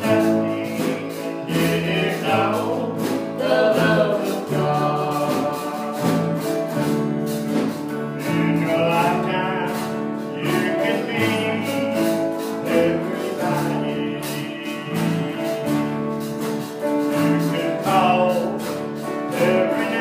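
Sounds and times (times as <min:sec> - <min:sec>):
acoustic guitar: 0:00.0 - 0:20.0
man singing gospel song: 0:00.0 - 0:20.0.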